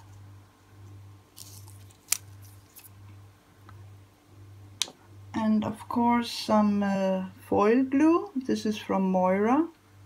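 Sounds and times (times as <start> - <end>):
foil rustling and crinkling: 1.3 - 3.0.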